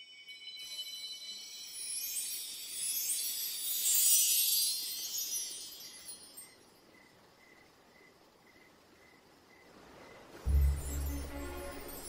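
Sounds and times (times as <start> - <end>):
shimmering chime-like sparkle: 0.0 - 6.9, 10.5 - 12.0.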